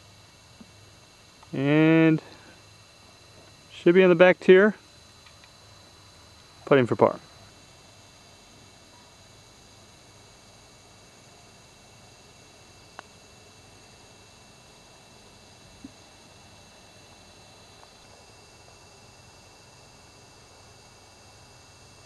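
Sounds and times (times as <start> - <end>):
faint outdoor hiss: 0.0 - 22.0
sharp click: 5.2 - 5.6.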